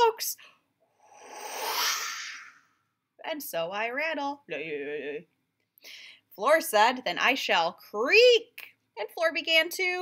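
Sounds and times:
breathy mouth whoosh: 0.8s - 2.8s.

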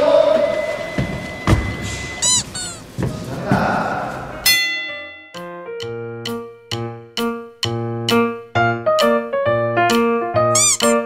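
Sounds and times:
squeaky chirp: 2.2s - 2.9s, 10.5s - 11.0s
light keyboard music: 4.4s - 11.0s.

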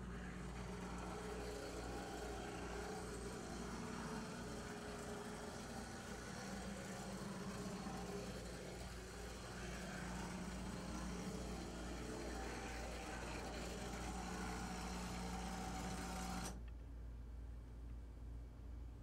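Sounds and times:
model trolley motor humming: 0.0s - 16.6s.

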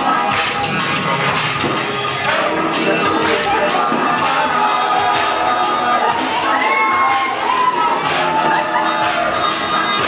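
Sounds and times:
crowd cheering and shouting: 0.0s - 10.0s
music: 0.0s - 10.0s.

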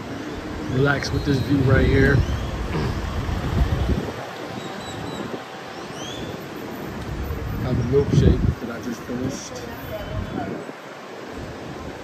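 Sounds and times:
faint outdoor background: 0.0s - 12.0s
wind rumbling on microphone: 0.0s - 12.0s.

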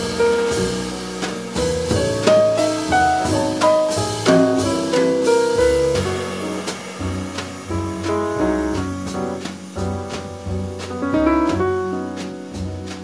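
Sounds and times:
drums keeping time: 0.0s - 13.0s
piano chords and melody: 0.0s - 13.0s
walking double bass: 0.0s - 13.0s.

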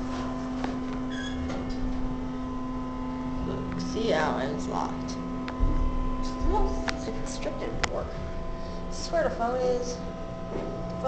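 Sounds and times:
elevator low hum: 0.0s - 11.0s.

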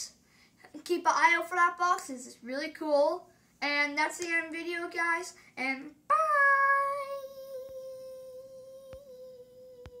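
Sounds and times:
person humming: 6.1s - 10.0s.

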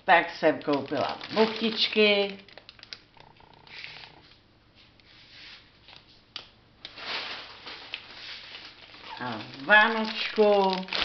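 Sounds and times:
plastic wrapping rustling: 0.1s - 6.2s, 6.8s - 11.0s.

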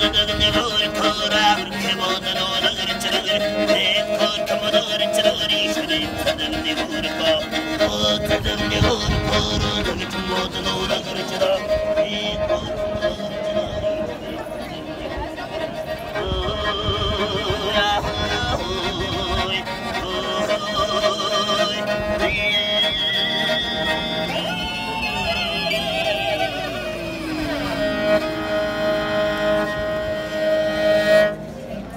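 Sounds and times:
bowed fiddle folk melody: 0.0s - 31.9s.

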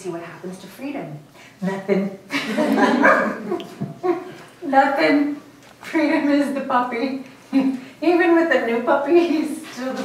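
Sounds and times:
group of people laughing: 2.3s - 4.4s.

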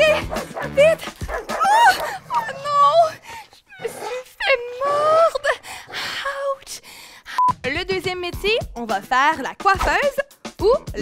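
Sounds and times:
background music with steady beat: 0.0s - 1.8s, 7.4s - 11.0s
dog barking: 0.1s - 2.5s.

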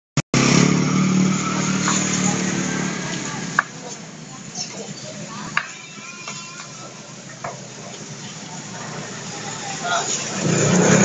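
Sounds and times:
vehicle engine running: 0.4s - 5.6s, 6.7s - 11.0s.

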